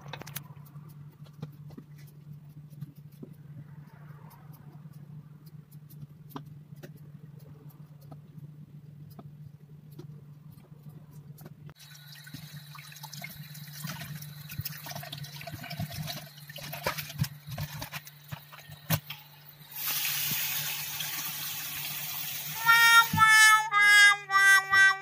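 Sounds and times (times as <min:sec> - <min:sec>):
steady low hum: 0:00.0 - 0:19.8
water splashing: 0:11.8 - 0:18.7
tap water running into sink: 0:11.8 - 0:19.0, 0:19.7 - 0:22.6
rushing water hiss: 0:19.7 - 0:22.6.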